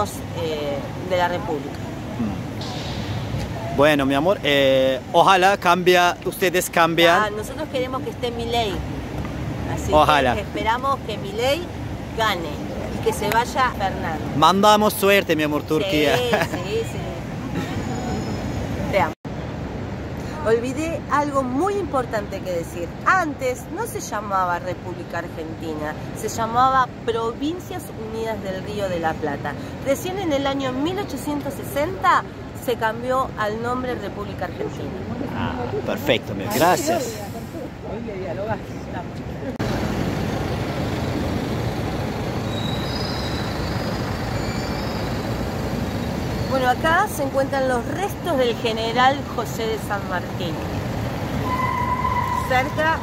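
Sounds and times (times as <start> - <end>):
city street traffic rumble: 0.0 - 53.0
short vocal sound: 2.1 - 2.6
buses driving past: 15.4 - 21.0, 25.3 - 53.0
faint high squeal: 17.7 - 18.8, 42.4 - 45.4.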